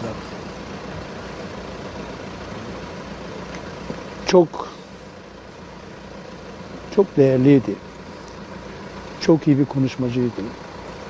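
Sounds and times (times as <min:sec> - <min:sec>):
road vehicle engine hum: 0:00.0 - 0:11.0.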